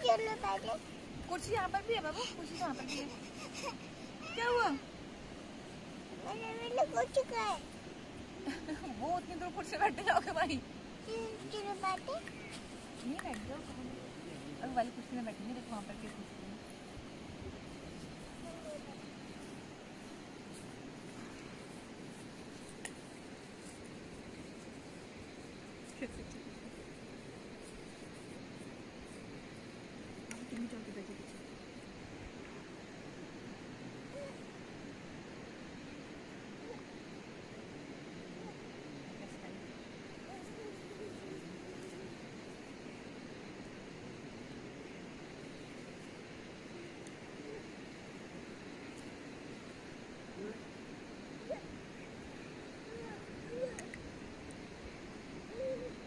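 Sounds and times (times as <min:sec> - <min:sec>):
faint background noise: 0:00.0 - 0:56.0
outdoor background noise: 0:00.0 - 0:56.0
bird hooting call: 0:55.5 - 0:56.0.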